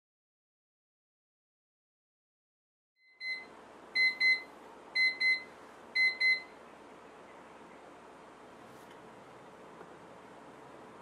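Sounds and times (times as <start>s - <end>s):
electronic alarm beeping: 3.1s - 6.5s
faint room hiss: 3.1s - 11.0s.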